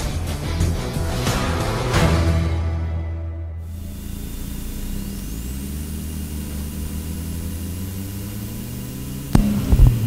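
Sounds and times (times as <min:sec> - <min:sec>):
car engines droning: 0:00.0 - 0:10.0
faint high whine: 0:03.6 - 0:10.0.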